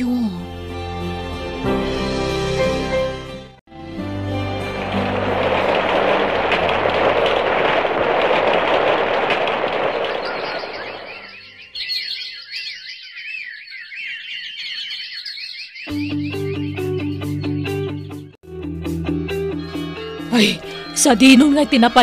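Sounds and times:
guitar music: 0:00.7 - 0:07.6, 0:15.9 - 0:22.0
dense rushing noise: 0:04.4 - 0:11.3
high warbling chirps: 0:09.8 - 0:16.8.

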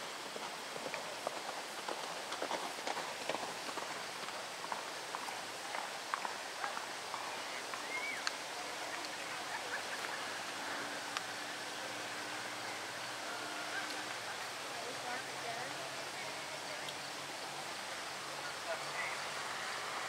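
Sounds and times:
outdoor hiss: 0:00.0 - 0:20.0
distant voices talking: 0:06.3 - 0:20.0.

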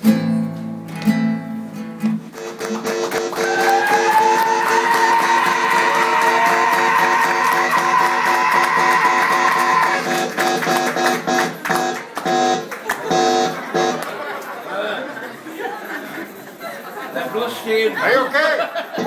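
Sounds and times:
guitar playing repeated pattern: 0:00.0 - 0:05.9, 0:07.0 - 0:14.0.

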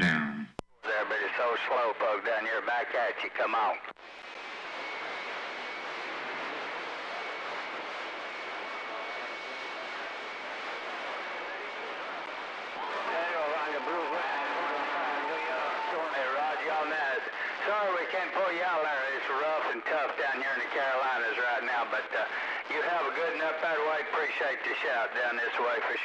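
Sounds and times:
garbled voice over radio: 0:00.0 - 0:01.0
radio static hiss: 0:00.0 - 0:26.0.

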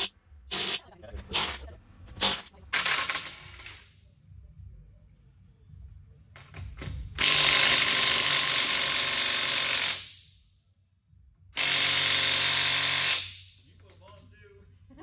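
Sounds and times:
impact wrench bursts: 0:00.0 - 0:01.6, 0:02.2 - 0:03.8, 0:07.2 - 0:10.4, 0:11.6 - 0:13.6.

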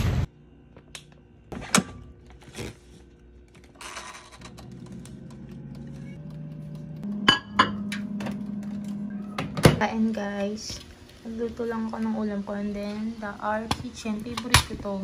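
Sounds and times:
higher appliance hum: 0:00.0 - 0:15.0
air fryer humming: 0:03.0 - 0:15.0.

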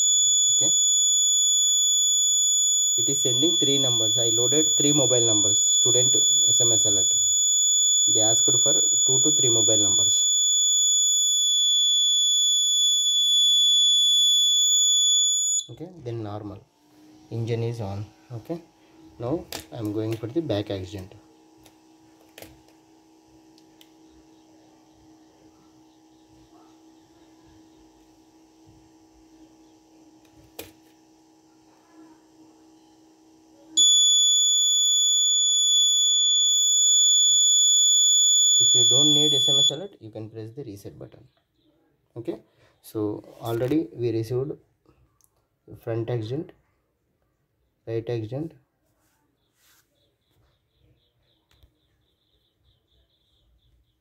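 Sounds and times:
high-pitched buzzer alarm tone: 0:00.0 - 0:15.8, 0:33.8 - 0:39.9.

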